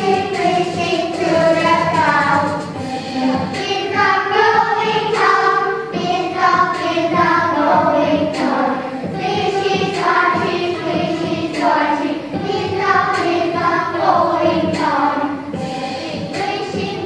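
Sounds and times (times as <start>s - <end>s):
children singing: 0.0s - 17.0s
musical backing: 0.0s - 17.0s.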